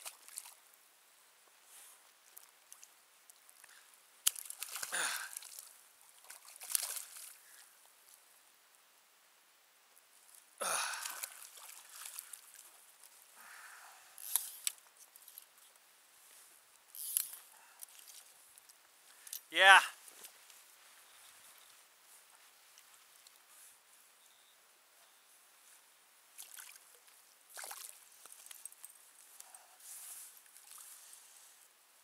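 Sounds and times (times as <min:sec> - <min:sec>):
water splashing and sloshing: 0:00.0 - 0:00.6, 0:03.5 - 0:07.6, 0:10.8 - 0:13.2, 0:17.1 - 0:18.7, 0:26.3 - 0:28.9, 0:30.4 - 0:31.0.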